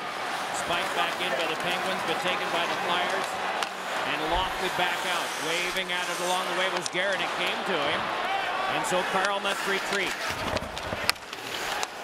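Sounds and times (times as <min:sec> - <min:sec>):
arena crowd noise: 0:00.0 - 0:12.0
hockey stick and puck cracks: 0:00.3 - 0:07.6, 0:09.0 - 0:12.0.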